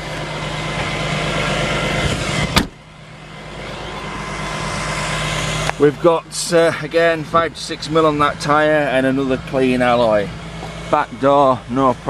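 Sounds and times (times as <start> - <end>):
car tailgate shutting: 2.0 - 2.8.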